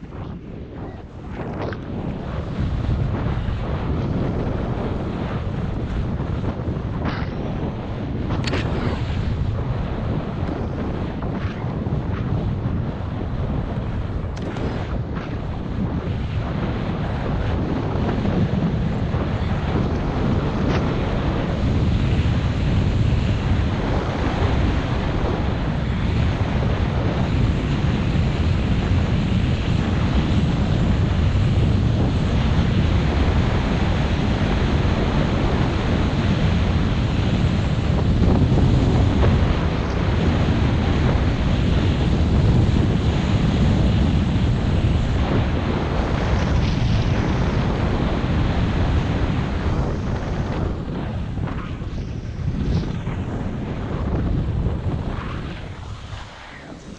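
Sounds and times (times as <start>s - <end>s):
wind buffeting microphone: 0.0s - 56.9s.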